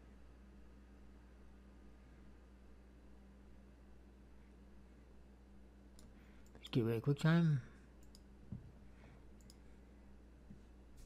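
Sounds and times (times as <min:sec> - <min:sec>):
faint steady hum: 0:00.0 - 0:11.0
computer mouse clicks: 0:08.0 - 0:08.3, 0:09.4 - 0:09.6.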